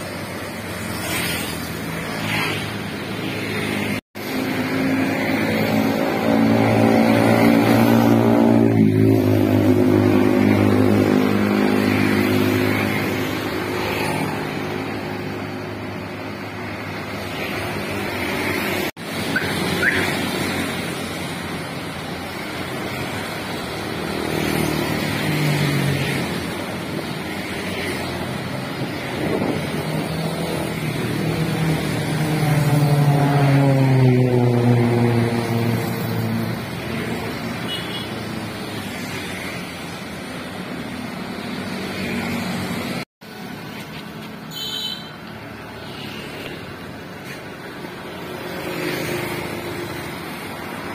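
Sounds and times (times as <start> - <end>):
motorcycles and scooters passing: 0.0 - 50.9.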